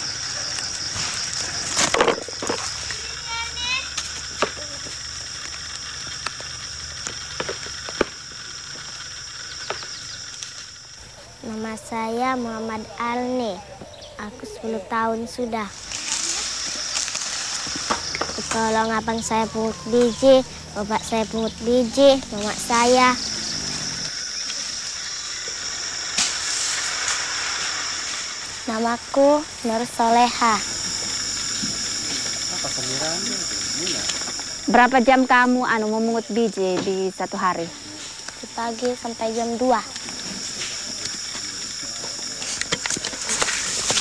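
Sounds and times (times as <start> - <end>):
background hiss: 0.0 - 44.0
high-pitched insect drone: 0.0 - 44.0
high-pitched whine: 0.0 - 44.0
footsteps on dry palm fronds: 15.7 - 18.8
sharp snaps and cracks: 15.8 - 18.7.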